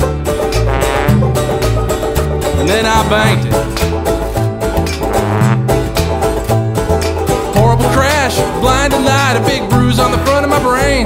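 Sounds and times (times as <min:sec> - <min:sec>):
banjo picking: 0:00.0 - 0:11.0
upright bass line: 0:00.0 - 0:11.0.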